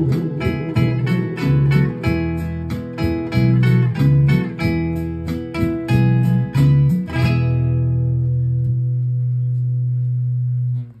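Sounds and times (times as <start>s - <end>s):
guitar and bass final chord: 0.0s - 11.0s.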